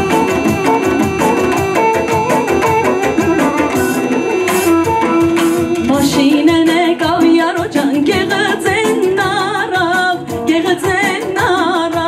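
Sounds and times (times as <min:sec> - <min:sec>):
steady drum beat: 0:00.0 - 0:12.0
woman singing into microphone: 0:04.8 - 0:12.0.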